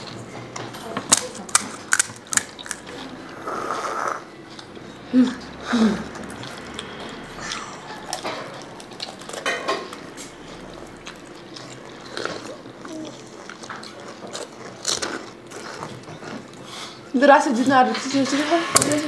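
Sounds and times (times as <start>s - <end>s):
crisp shells cracking and crunching: 1.0s - 3.1s, 10.6s - 16.2s.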